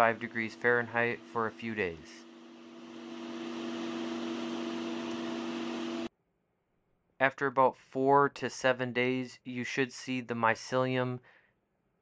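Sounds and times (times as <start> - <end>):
blower airy hiss and hum: 0.0 - 6.1.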